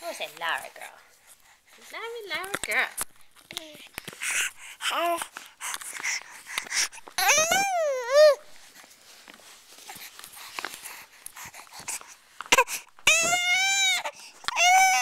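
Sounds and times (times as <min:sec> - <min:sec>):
infant crying: 0:07.2 - 0:08.5, 0:12.5 - 0:15.0.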